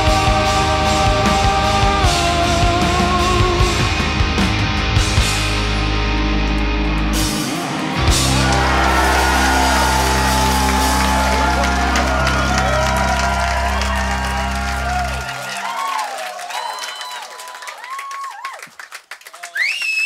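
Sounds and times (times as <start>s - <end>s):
rock band chord ringing: 0.0s - 15.5s
crowd cheering and whooping: 7.0s - 20.0s.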